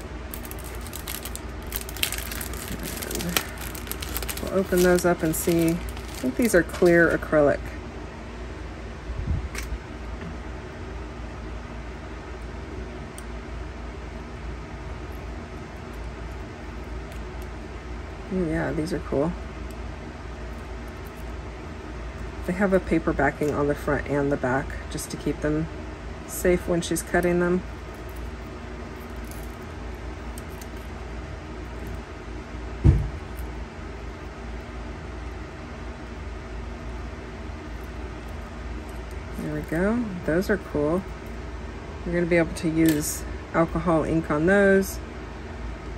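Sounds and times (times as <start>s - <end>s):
paper backing crinkling: 0.0s - 7.3s
low background hum: 0.0s - 45.9s.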